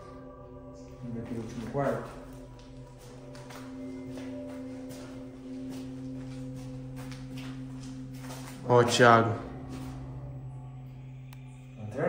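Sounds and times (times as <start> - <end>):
droning music of held tones: 0.0 - 12.0
faint footsteps: 0.9 - 10.7.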